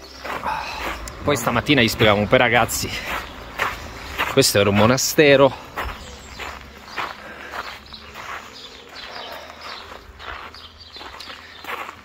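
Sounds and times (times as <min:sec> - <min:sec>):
footsteps crunching on gravel: 0:00.0 - 0:12.0.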